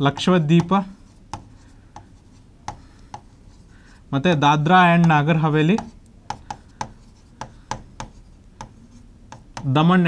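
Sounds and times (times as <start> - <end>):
pen rubbing on board: 0.1 - 3.8, 5.8 - 9.7.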